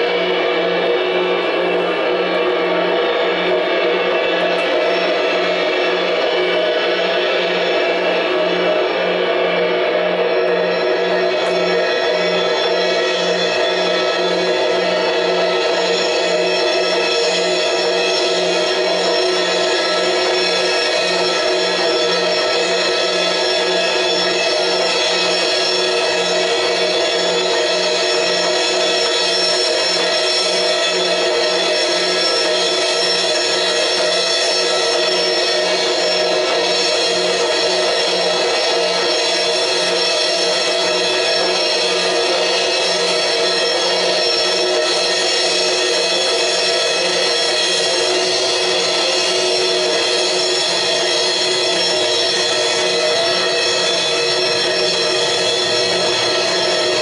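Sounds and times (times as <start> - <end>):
cymbal and guitar drone: 0.0 - 57.0.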